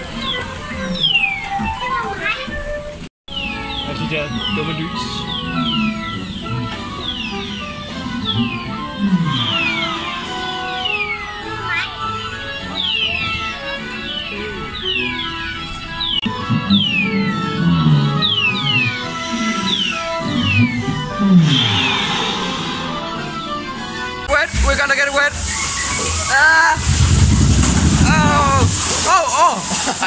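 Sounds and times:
dark ride background music: 0.0 - 30.0
falling whistle sound effects: 9.4 - 11.2, 19.6 - 24.1, 25.4 - 26.5
short rushing noise: 21.4 - 24.8.

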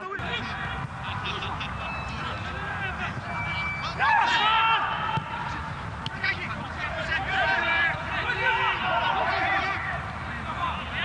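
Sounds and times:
footballers shouting: 0.0 - 11.0
low rumble of stadium ambience: 0.0 - 11.0.

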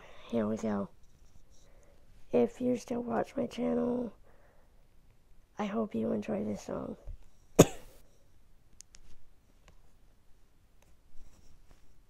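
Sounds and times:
person coughing: 7.6 - 8.0.

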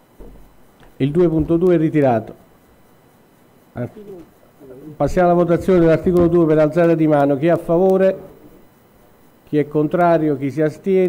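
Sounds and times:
faint murmured syllables: 3.6 - 11.0.

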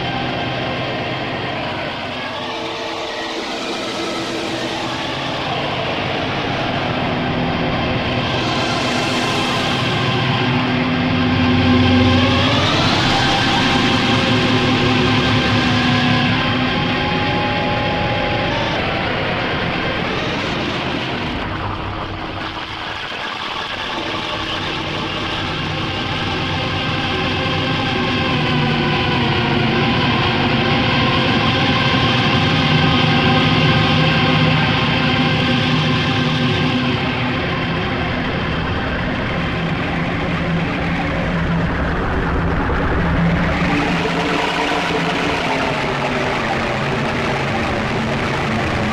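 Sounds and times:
electronic drone with noise: 0.0 - 48.9.

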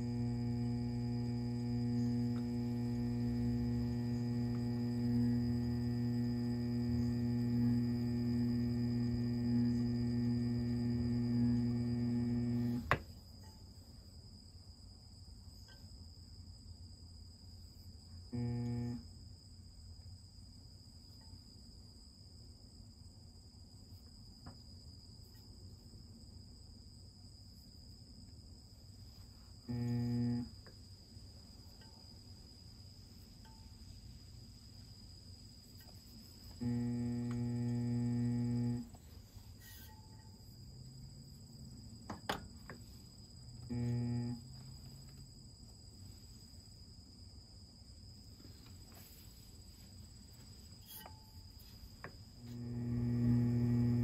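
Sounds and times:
pottery wheel motor humming: 0.0 - 13.2, 18.3 - 19.1, 29.0 - 46.5, 48.3 - 54.0.

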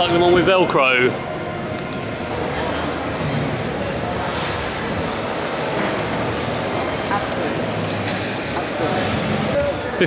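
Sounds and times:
distant indistinct voices: 0.0 - 10.0
exhibition hall din: 0.0 - 10.0.

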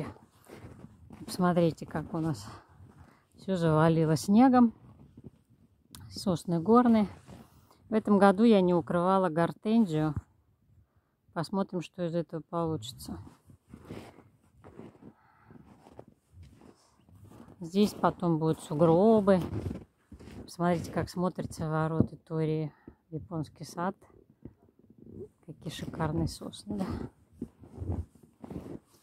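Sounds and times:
footsteps crunching in snow: 0.0 - 3.2, 13.2 - 21.1, 25.8 - 29.0.

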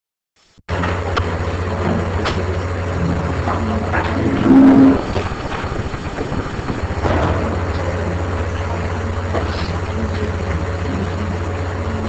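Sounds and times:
low rumble with microphone hiss: 0.7 - 12.0.

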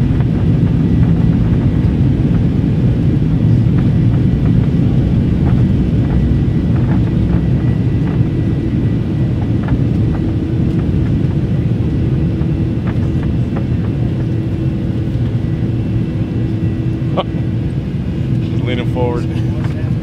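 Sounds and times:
jet engines and airflow roar: 0.0 - 20.0.

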